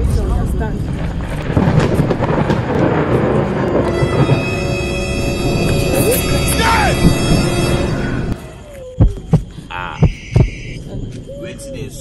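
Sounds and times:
thunder rumbling: 0.0s - 12.0s
person shouting: 5.9s - 7.0s.

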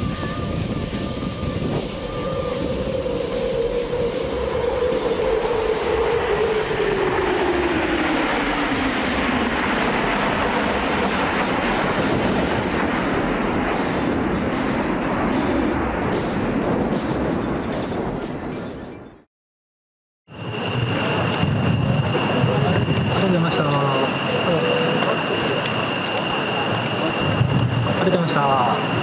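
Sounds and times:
jet roar passing overhead: 0.0s - 19.3s, 20.3s - 29.0s.

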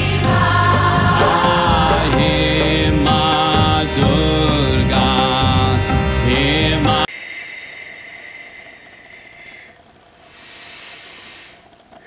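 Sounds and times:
person chanting: 0.0s - 7.1s.

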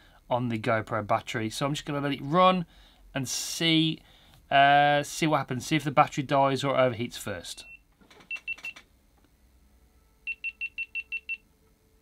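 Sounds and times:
short high beeps: 10.3s - 11.4s.

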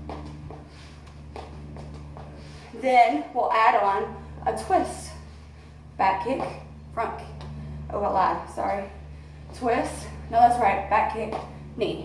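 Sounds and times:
sneaker footfalls on concrete: 0.0s - 2.6s
steady low hum: 0.0s - 12.0s.

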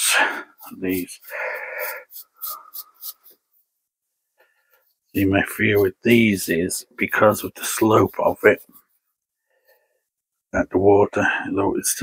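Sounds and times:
moss scratching and crackling: 0.6s - 9.4s.

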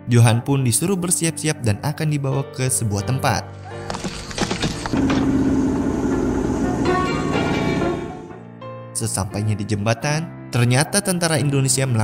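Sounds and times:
background music: 0.0s - 12.0s
truck engine running: 4.0s - 8.3s.

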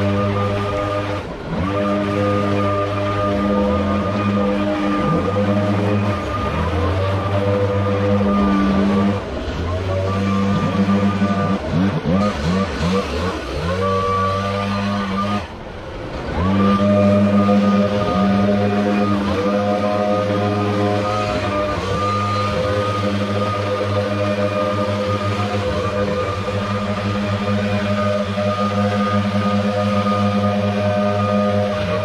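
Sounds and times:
leaf blower engine revving: 0.0s - 32.0s.

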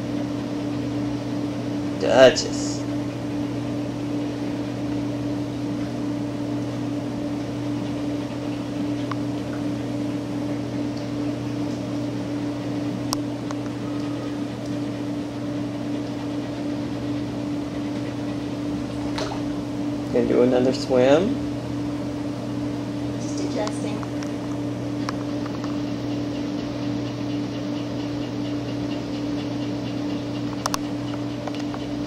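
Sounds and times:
steady mechanical hum: 0.0s - 32.0s.

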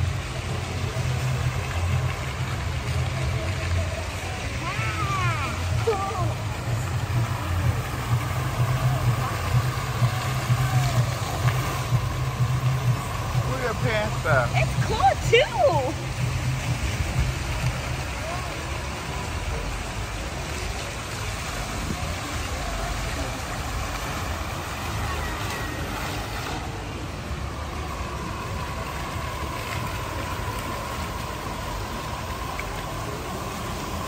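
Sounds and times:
fountain water splashing: 0.0s - 34.0s.

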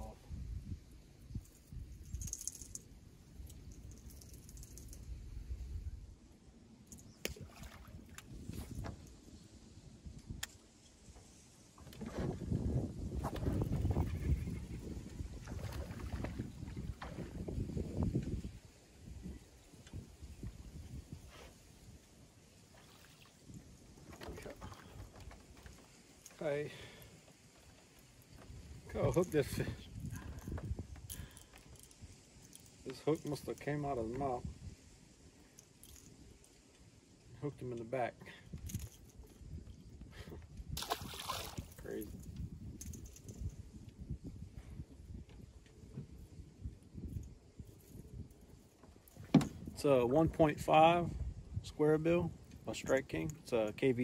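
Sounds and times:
soft knocks and rustles of handling fish: 8.2s - 9.2s, 24.0s - 26.4s, 48.7s - 49.7s
water sloshing against metal hull: 15.3s - 17.5s, 22.7s - 26.4s.

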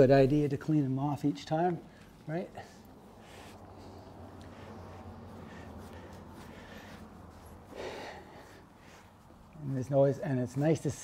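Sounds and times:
brush strokes on horse coat: 0.0s - 11.0s
steady low hum: 0.0s - 11.0s.

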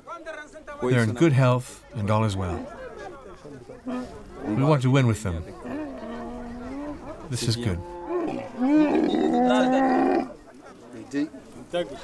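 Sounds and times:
camel grunting and bellowing: 3.8s - 4.7s, 5.5s - 10.4s.

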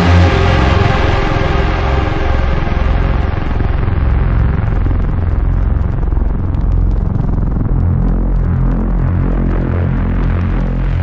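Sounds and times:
rumbling electronic drone: 0.0s - 11.0s.

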